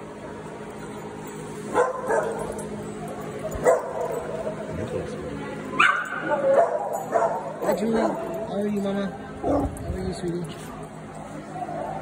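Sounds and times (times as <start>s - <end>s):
small dog barking: 1.7s - 2.4s, 3.6s - 4.1s, 5.8s - 7.8s.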